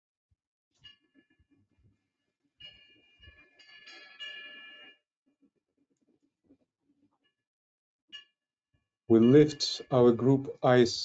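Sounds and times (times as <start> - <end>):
high ringing chime tones: 2.6 - 5.0.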